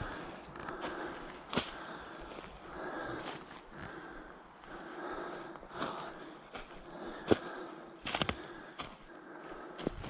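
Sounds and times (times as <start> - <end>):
footsteps crunching dry grass: 0.0 - 10.0.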